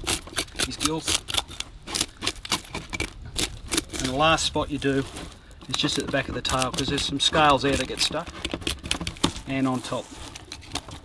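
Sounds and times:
fish scaler scraping scales: 0.0s - 10.8s.

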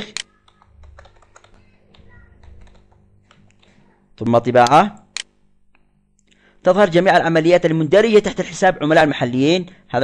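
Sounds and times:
computer keyboard clicks: 0.1s - 3.8s.

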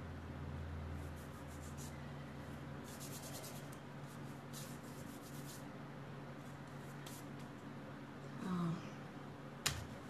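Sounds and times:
steady low hum: 0.0s - 10.0s
scratchy rubbing: 1.0s - 2.0s, 2.8s - 5.6s.

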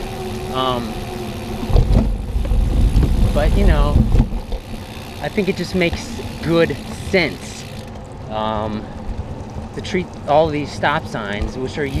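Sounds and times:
bicycle tyres rolling on wet pavement: 0.0s - 12.0s
wheels bumping onto bridge deck: 0.0s - 12.0s
wind rumbling on microphone: 0.7s - 5.0s.

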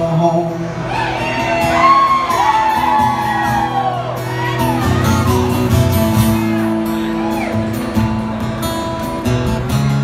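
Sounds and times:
acoustic guitar: 0.0s - 10.0s
audience whooping and shouting: 0.9s - 5.6s, 6.9s - 7.8s.

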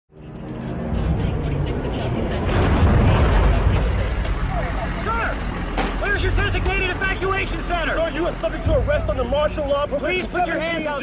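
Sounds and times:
man speaking: 6.0s - 11.0s.

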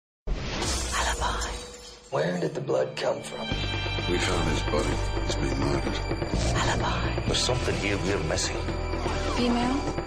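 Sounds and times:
crash sound effect: 0.3s - 1.3s
music: 0.6s - 10.0s.

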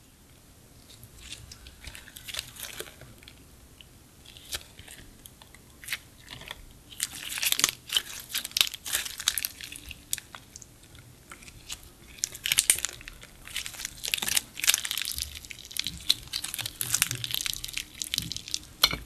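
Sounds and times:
slime crackling and popping: 5.8s - 19.0s.

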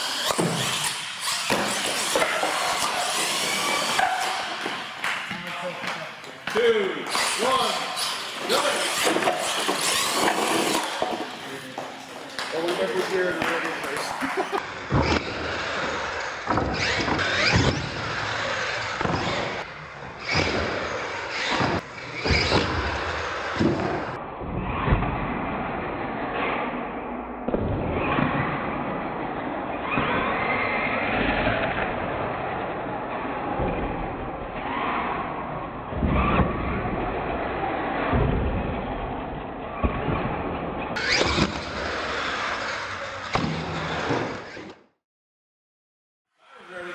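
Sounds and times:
toy truck motor whining: 7.1s - 11.0s, 41.0s - 44.7s
voices: 10.7s - 14.6s.

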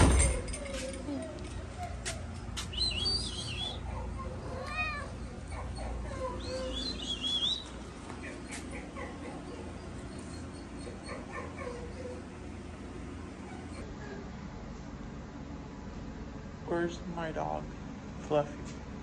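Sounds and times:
cat chirping: 2.7s - 11.6s
cat meowing: 4.4s - 5.4s.

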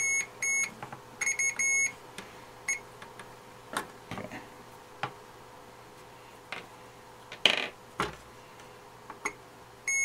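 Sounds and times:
multimeter continuity beeps: 0.0s - 2.0s.

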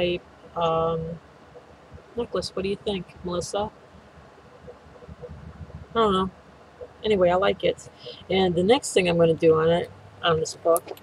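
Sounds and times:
person speaking: 0.0s - 1.2s, 2.2s - 3.7s, 5.0s - 6.3s, 7.0s - 11.0s
low room rumble: 0.0s - 11.0s.

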